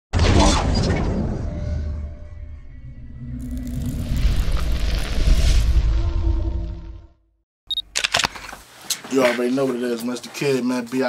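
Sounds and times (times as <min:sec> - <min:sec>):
low rumble: 0:00.4 - 0:07.4
swelling noise: 0:01.5 - 0:07.2.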